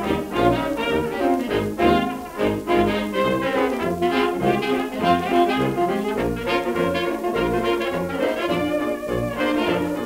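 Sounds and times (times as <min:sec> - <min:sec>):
clarinet: 0:00.0 - 0:10.0
cornet: 0:00.0 - 0:10.0
piano and banjo: 0:00.0 - 0:10.0
saxophone: 0:00.0 - 0:10.0
trombone: 0:00.0 - 0:10.0
tuba marking a steady beat: 0:00.0 - 0:10.0.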